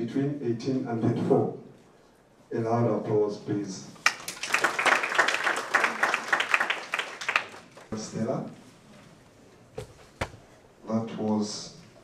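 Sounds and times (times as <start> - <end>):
audience applauding: 4.0 - 8.0.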